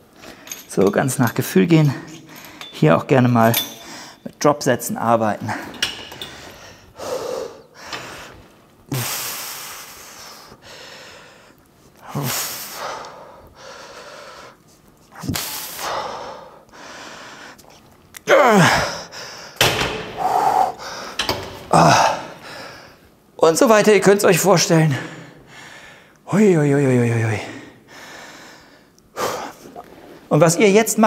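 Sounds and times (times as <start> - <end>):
man groaning with strain: 18.3 - 19.1, 21.7 - 22.4
man exhaling forcefully: 20.0 - 22.6.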